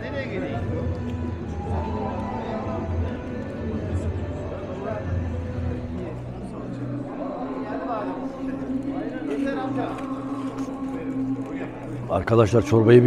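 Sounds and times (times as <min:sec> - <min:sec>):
people talking: 0:01.6 - 0:13.0.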